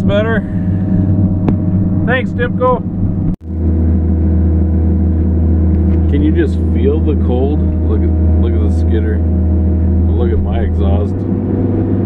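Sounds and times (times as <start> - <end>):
diesel engine low drone: 0.0 - 12.0.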